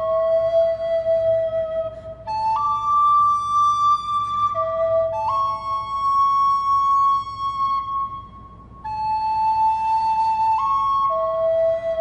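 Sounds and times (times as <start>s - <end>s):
recorder melody: 0.0s - 12.0s.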